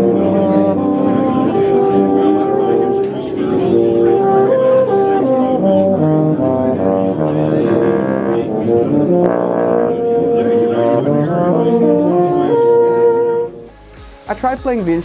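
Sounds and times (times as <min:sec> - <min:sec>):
euphonium melody: 0:00.0 - 0:15.0.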